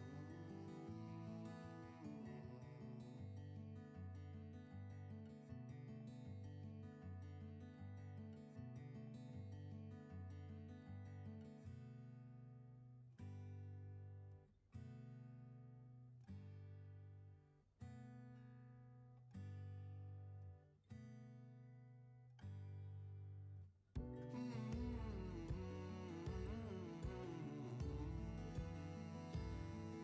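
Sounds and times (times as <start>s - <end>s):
acoustic guitar chords: 0.0s - 17.1s, 24.0s - 30.0s.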